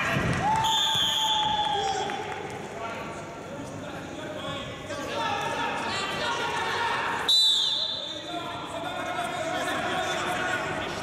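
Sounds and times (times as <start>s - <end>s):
referee's whistle blast: 0.7s - 1.7s, 7.3s - 8.3s.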